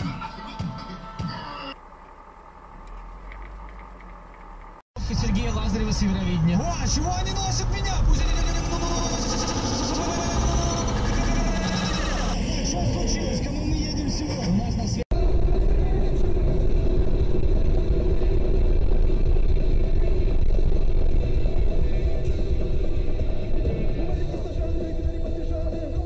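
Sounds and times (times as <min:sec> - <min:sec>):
car engine and road noise: 0:00.0 - 0:26.0
traffic noise: 0:00.0 - 0:26.0
people talking: 0:05.0 - 0:16.3.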